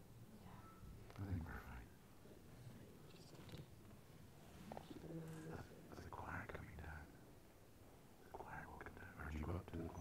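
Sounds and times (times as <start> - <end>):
hushed voices in reverberant church: 0.4 - 7.2.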